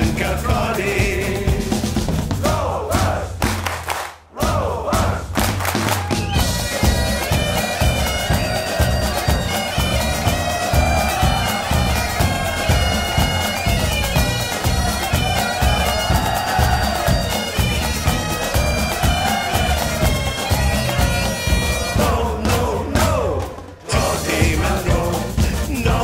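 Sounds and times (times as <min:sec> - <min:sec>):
drum beat: 0:00.0 - 0:26.0
bagpipe melody over drones: 0:06.4 - 0:22.2.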